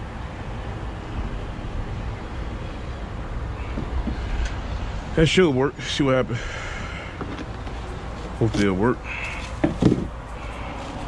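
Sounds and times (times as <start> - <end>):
steady low hum: 0.0 - 11.0
knocks from handling parts: 9.6 - 10.2.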